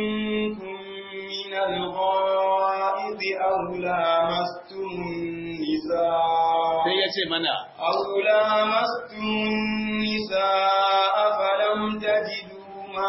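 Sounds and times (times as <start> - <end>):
man chanting melodic recitation: 0.0 - 13.0.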